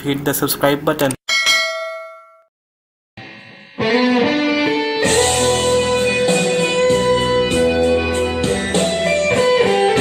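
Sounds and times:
bell-like ding: 1.3 - 2.5.

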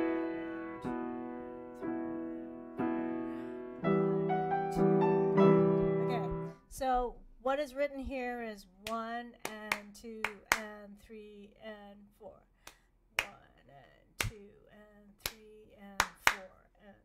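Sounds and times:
woman singing a rhythm: 6.1 - 17.0
hands clapping a rhythm: 8.8 - 10.8, 12.6 - 13.4, 15.2 - 16.5.

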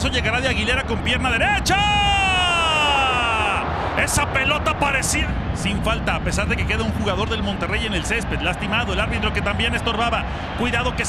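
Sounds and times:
stadium crowd noise: 0.0 - 11.0
commentator's long drawn-out shout: 1.4 - 3.7.

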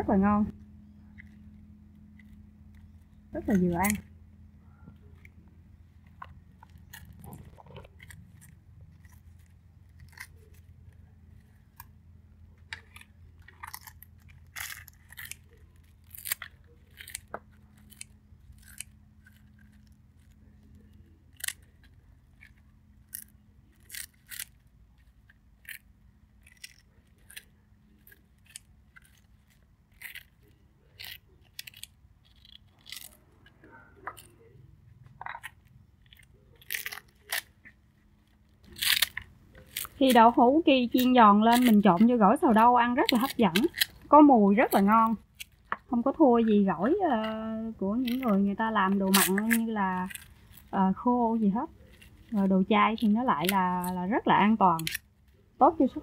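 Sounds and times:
low steady hum: 0.0 - 56.0
scissors snipping crunchy food: 2.2 - 4.1, 6.1 - 11.9, 12.6 - 34.6, 35.2 - 50.7, 51.6 - 55.4.

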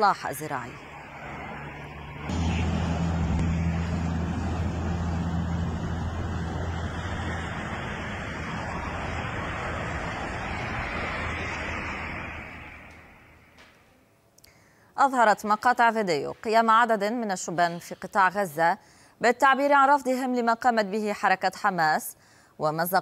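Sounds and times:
street noise rush: 0.0 - 13.8
low steady hum: 2.2 - 12.2.

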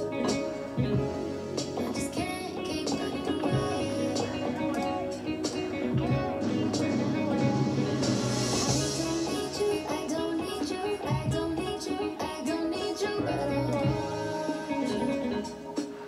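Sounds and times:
held bass line: 0.0 - 11.8, 13.2 - 15.5
electronic keyboard playing chords: 0.0 - 16.0.

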